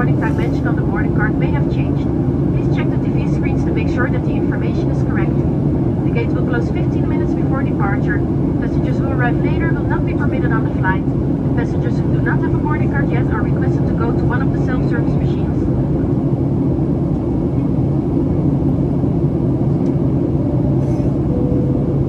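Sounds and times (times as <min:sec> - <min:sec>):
person speaking: 0:00.0 - 0:01.8
airplane cabin engine drone: 0:00.0 - 0:22.0.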